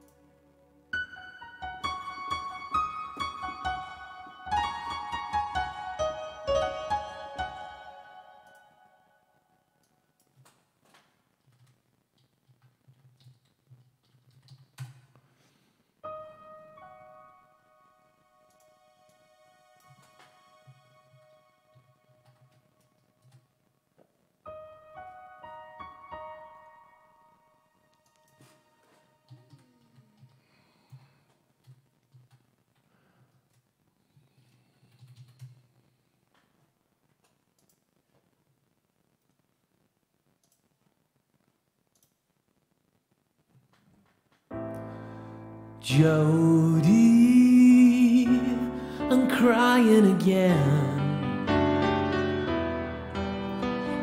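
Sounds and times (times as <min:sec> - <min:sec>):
digital piano notes: 0:00.0 - 0:09.2, 0:16.0 - 0:22.5, 0:24.5 - 0:29.8, 0:44.5 - 0:54.0
faint clicks: 0:29.3 - 0:38.4, 0:39.1 - 0:42.6
faint scattered clicks: 0:36.3 - 0:38.4, 0:40.3 - 0:42.3.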